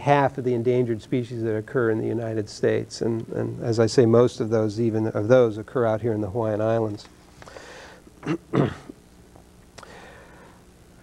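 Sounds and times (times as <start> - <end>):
faint intake of breath: 7.4 - 8.1, 9.8 - 10.7
man clearing his throat: 8.2 - 9.0.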